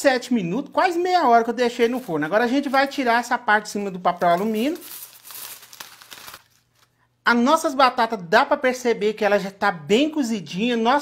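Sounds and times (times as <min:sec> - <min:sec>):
aluminium foil crinkling: 0:01.6 - 0:03.3, 0:03.9 - 0:07.0.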